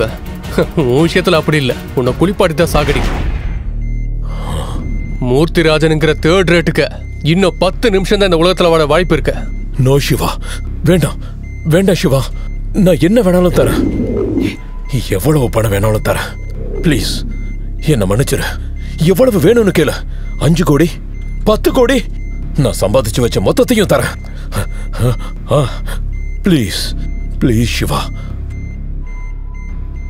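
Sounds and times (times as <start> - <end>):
faint high beeping tones: 3.5 - 30.0
low background drone: 3.7 - 30.0
man speaking: 7.5 - 28.2
low rumbling drone: 12.4 - 20.4
held tone: 13.4 - 18.9.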